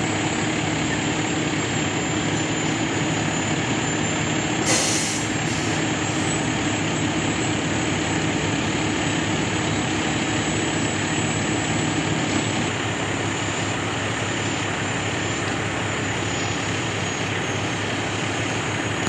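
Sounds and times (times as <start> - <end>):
fire engine engine running: 0.0 - 19.0.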